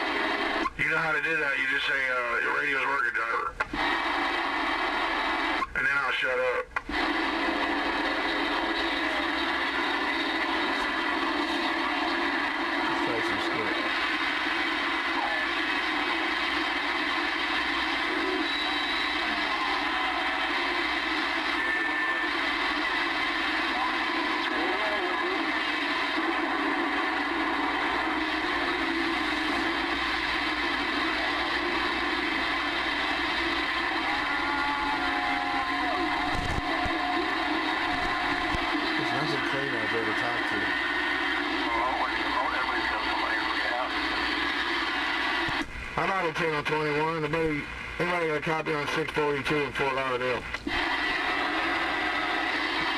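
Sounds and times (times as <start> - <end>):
faint garbled voices: 0.0 - 45.6
radio static: 0.0 - 52.9
whistling tones: 18.2 - 19.8.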